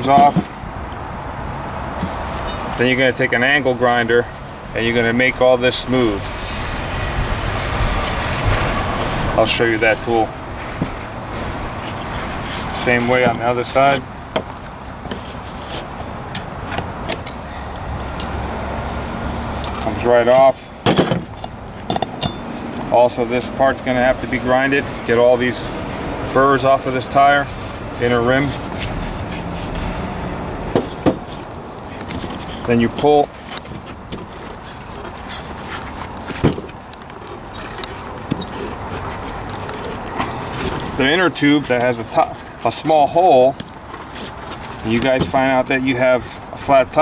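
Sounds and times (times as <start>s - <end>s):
rubber rubbing and scraping: 1.9s - 17.4s, 18.0s - 47.0s
pry bars clinking on steel rim: 16.2s - 18.5s, 19.4s - 20.6s, 21.3s - 22.6s.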